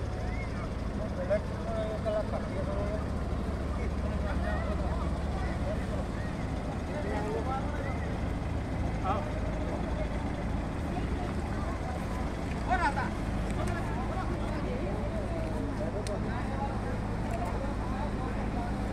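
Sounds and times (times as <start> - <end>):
crowd chatter: 0.0 - 18.9
heavy diesel engines running: 0.0 - 18.9.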